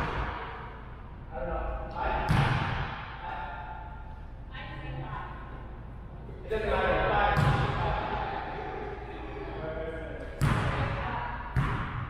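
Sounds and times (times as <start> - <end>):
murmur of voices: 6.1 - 11.6.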